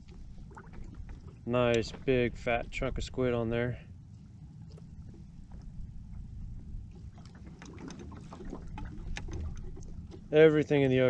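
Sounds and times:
water against boat hull: 0:00.0 - 0:11.0
wind rumble: 0:00.0 - 0:11.0.

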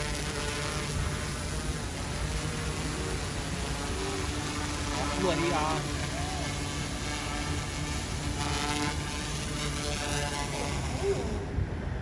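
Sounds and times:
drone rotors whirring: 0:00.0 - 0:12.0.

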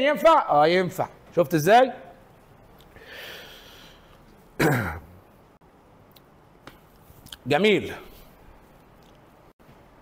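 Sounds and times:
man clearing his throat: 0:04.6 - 0:05.2.

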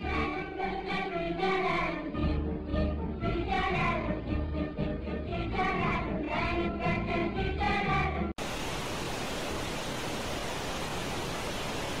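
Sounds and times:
tv static hiss: 0:08.4 - 0:12.0.

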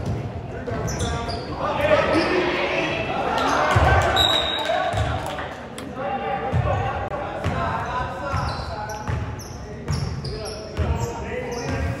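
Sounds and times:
basketball bouncing on court: 0:08.3 - 0:09.3.

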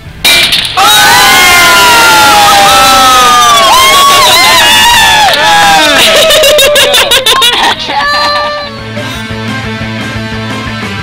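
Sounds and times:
people cheering with whoops: 0:00.8 - 0:08.7.

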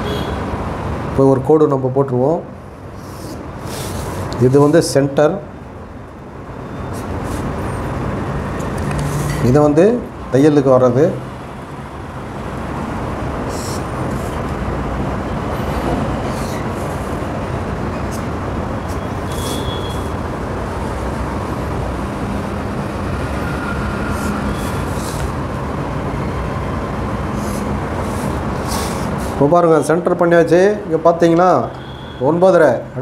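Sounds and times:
road traffic noise: 0:00.0 - 0:33.0.

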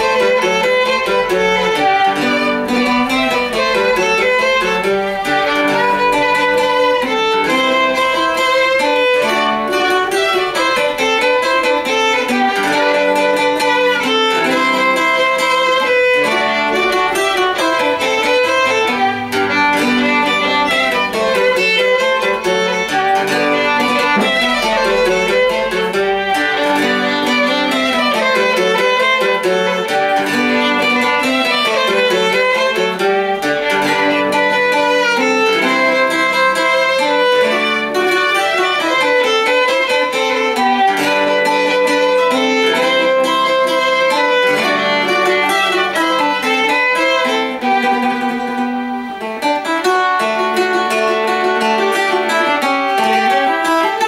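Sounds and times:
bowed violin: 0:00.0 - 0:54.0
plucked mandola: 0:00.0 - 0:54.0.

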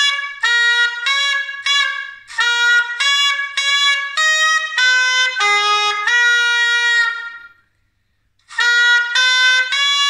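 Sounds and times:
woodwind note: 0:00.0 - 0:07.8, 0:08.4 - 0:10.0.

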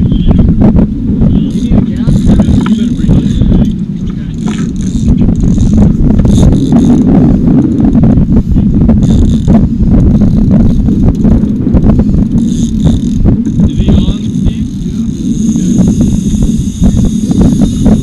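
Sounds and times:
boat low rumble: 0:00.0 - 0:18.0.

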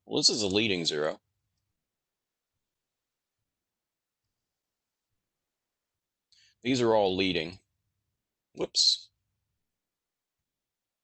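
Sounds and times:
man speaking: 0:00.0 - 0:01.2, 0:06.6 - 0:07.7, 0:08.5 - 0:09.2.

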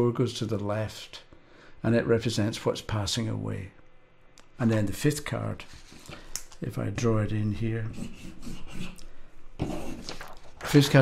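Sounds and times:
pen scratching on paper: 0:07.9 - 0:09.0.

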